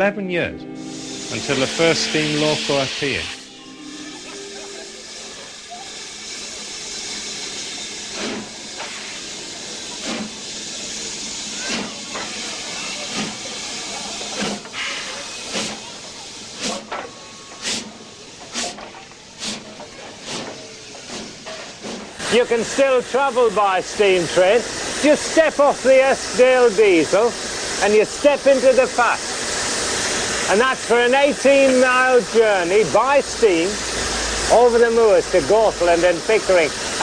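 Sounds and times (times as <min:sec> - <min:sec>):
steam locomotive exhaust beats: 0:00.7 - 0:37.0
hiss of escaping steam: 0:00.8 - 0:37.0.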